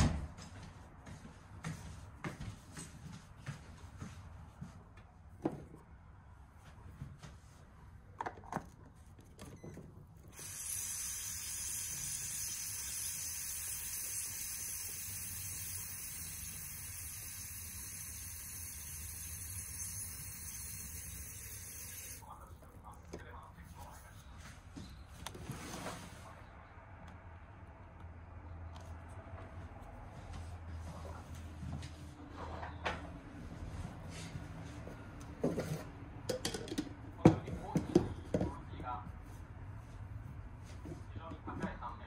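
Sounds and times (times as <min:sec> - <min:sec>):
steady hiss: 0:10.4 - 0:22.2.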